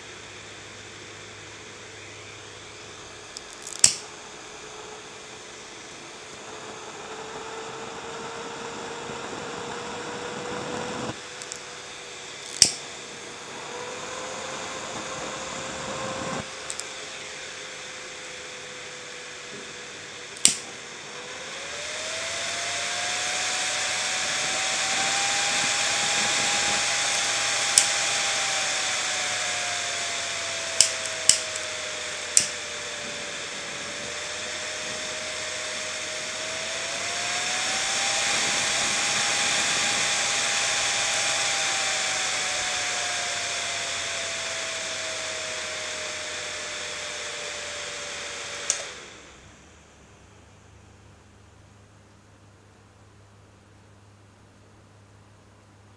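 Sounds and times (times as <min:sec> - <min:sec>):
cooling fan whirring: 0:00.0 - 0:55.9
sharp clicks: 0:03.2 - 0:05.0, 0:11.0 - 0:11.7, 0:12.4 - 0:12.9, 0:16.3 - 0:17.0, 0:20.4 - 0:20.7, 0:25.9 - 0:28.5, 0:30.5 - 0:32.8, 0:48.5 - 0:49.1.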